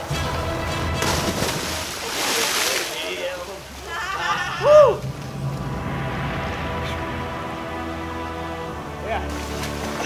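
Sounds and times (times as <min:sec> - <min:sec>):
splash into deep water: 0:01.0 - 0:03.1.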